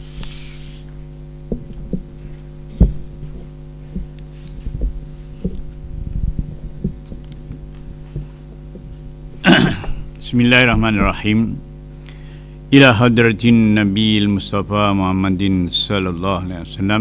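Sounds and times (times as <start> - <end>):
microphone handling thumps: 0.0 - 11.5
electrical hum: 0.0 - 17.0.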